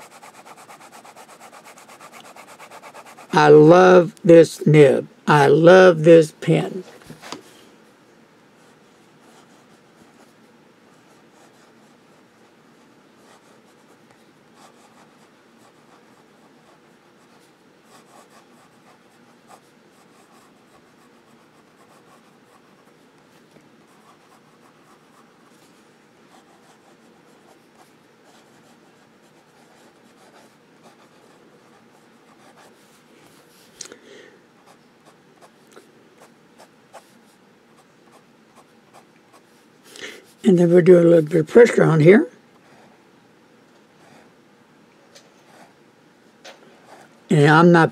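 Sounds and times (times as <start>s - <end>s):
fountain pen scratching paper: 0.0s - 3.3s.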